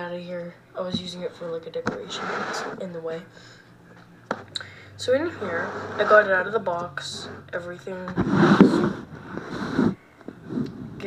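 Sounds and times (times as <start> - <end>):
plastic container rubbing on desk: 1.9 - 2.8, 5.4 - 7.5, 8.1 - 10.8.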